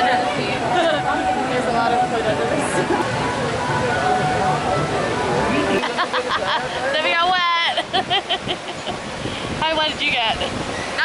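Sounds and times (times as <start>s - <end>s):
crowd chatter: 0.0s - 11.0s
rushing splashing water: 0.0s - 11.0s.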